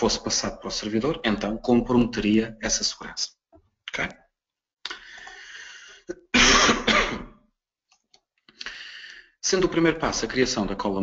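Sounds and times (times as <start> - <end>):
person clearing throat: 6.1 - 7.4.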